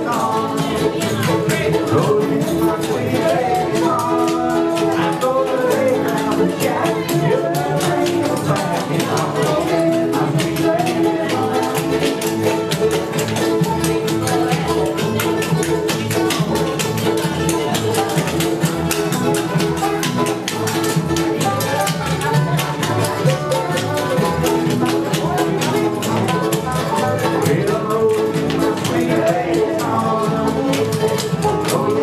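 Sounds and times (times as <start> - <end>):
acoustic guitars picking: 0.0 - 32.0
banjo: 0.0 - 32.0
mandolin: 0.0 - 32.0.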